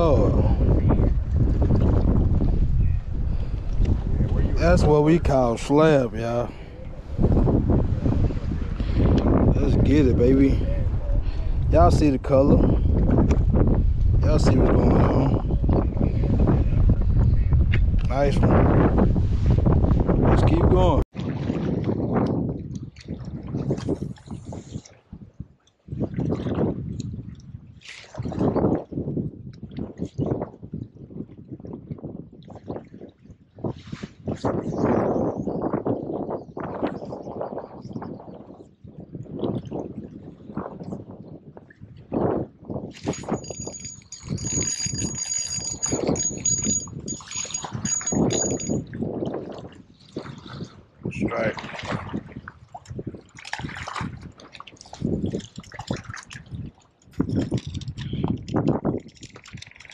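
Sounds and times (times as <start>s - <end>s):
river water sloshing against rocks: 51.4s - 59.9s.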